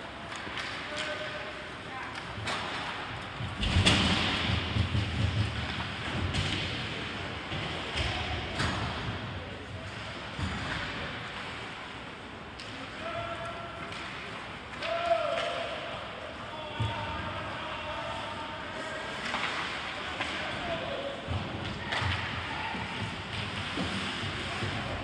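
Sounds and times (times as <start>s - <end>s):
hockey sticks and puck clacking: 0.0s - 25.0s.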